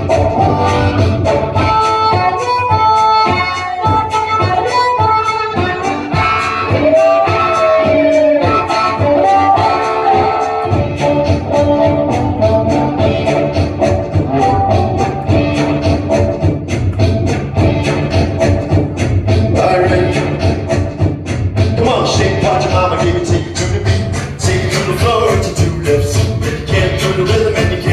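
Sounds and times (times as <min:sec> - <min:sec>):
harmonica playing: 0:00.0 - 0:16.6
steady beat with bass: 0:00.0 - 0:27.9.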